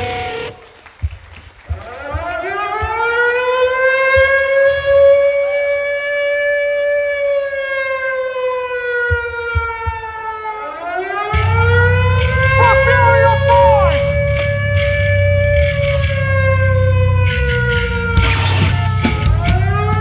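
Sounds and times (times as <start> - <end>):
air-raid siren wailing: 10.2 - 14.6.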